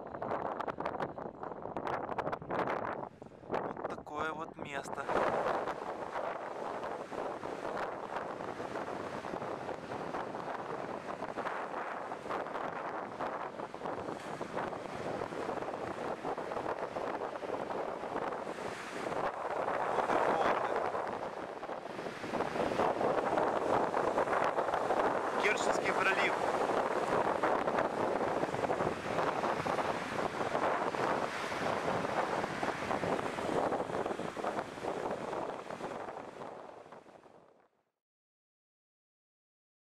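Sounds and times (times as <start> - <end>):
wind buffeting microphone: 0.0 - 37.4
small waves washing ashore: 4.9 - 37.2.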